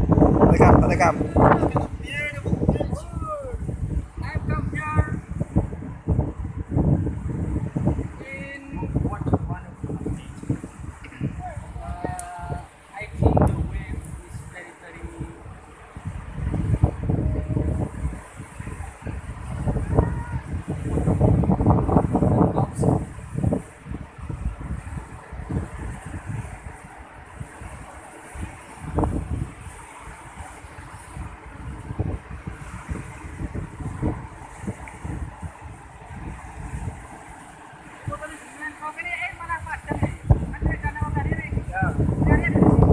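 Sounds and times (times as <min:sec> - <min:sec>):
surf breaking on rocky shore: 0:00.0 - 0:42.9
wind buffeting microphone: 0:00.0 - 0:42.9.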